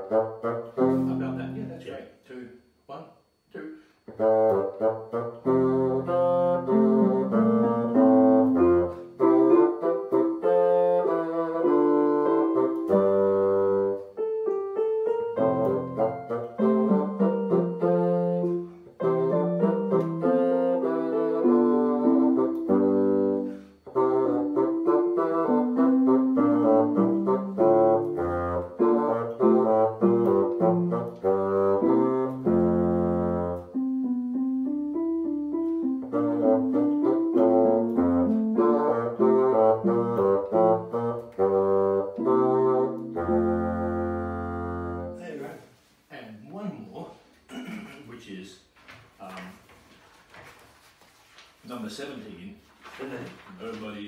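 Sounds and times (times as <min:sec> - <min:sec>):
bassoon solo: 0:00.0 - 0:01.9, 0:04.1 - 0:45.3
digital piano accompaniment: 0:00.0 - 0:02.0, 0:04.2 - 0:45.4.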